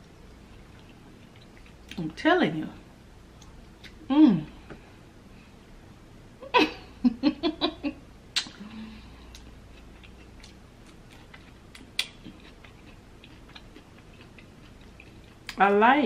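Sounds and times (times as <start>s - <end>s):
woman giggling: 6.4s - 8.0s
faint finger clicks on fruit: 8.4s - 8.6s.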